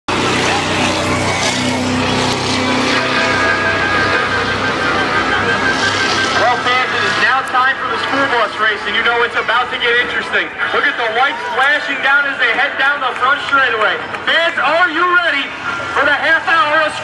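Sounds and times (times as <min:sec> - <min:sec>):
announcer over public address: 0:00.1 - 0:17.0
crowd noise: 0:00.1 - 0:17.0
race car engines: 0:00.1 - 0:17.0.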